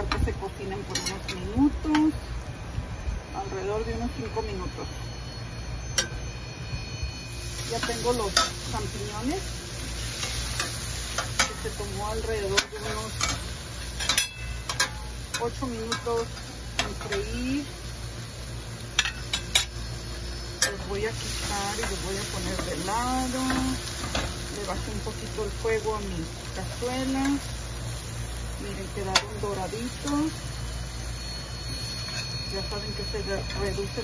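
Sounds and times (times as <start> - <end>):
mushrooms stirred in skillet: 7.3 - 34.0
metal spoon clinking on skillet: 7.8 - 8.6, 10.2 - 11.7, 12.5 - 13.4, 14.0 - 17.3, 19.0 - 19.7, 29.1 - 30.3, 32.0 - 32.8
utensil clinking on pan: 14.0 - 16.2.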